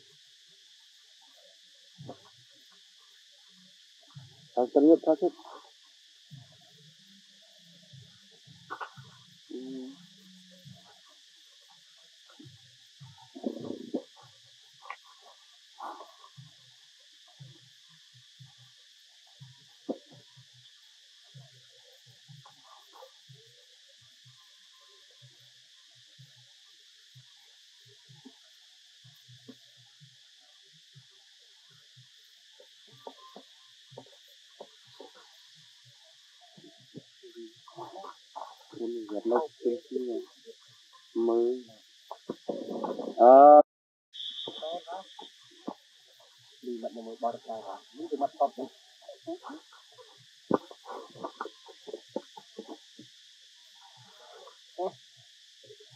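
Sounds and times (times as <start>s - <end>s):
insect chorus buzzing: 0.0s - 43.6s, 44.2s - 55.9s.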